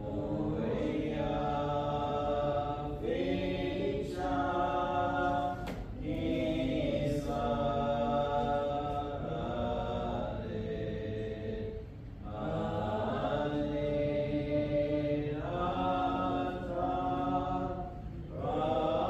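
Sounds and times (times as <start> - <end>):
voices singing a hymn: 0.0 - 19.0.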